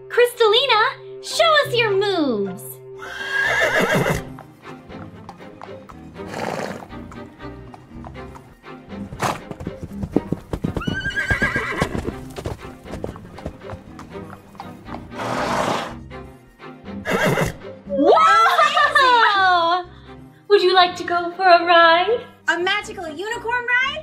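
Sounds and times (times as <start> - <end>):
background music: 0.0 - 24.0
horse whinnying: 3.0 - 4.4, 6.2 - 7.1, 10.6 - 13.4, 15.0 - 16.0, 17.0 - 17.6
hoofbeats clattering: 3.9 - 15.9.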